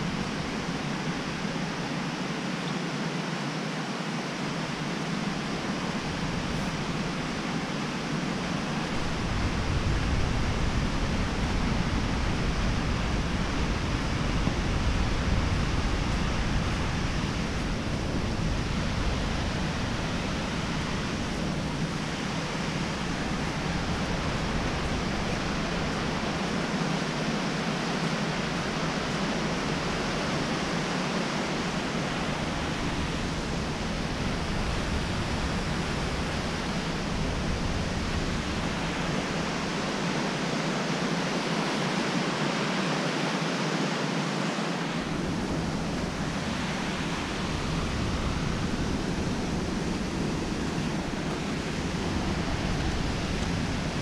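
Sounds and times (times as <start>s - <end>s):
creek water rushing over rocks: 0.0s - 54.0s.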